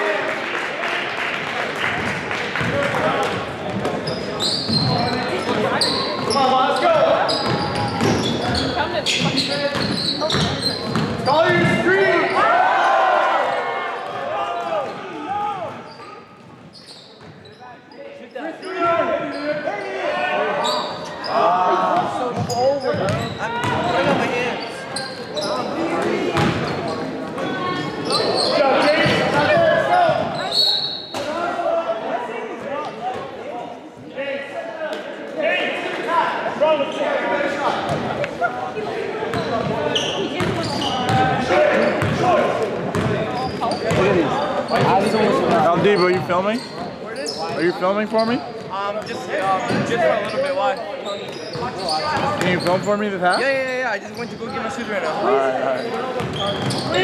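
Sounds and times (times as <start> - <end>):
voices talking and calling out: 2.8 - 57.0
basketball bouncing on gym floor: 7.4 - 11.8, 22.4 - 23.9, 40.4 - 41.3.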